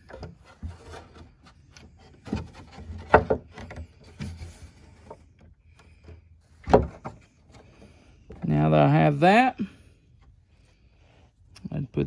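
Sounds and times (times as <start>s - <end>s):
wood knocking and rubbing: 0.0s - 8.5s.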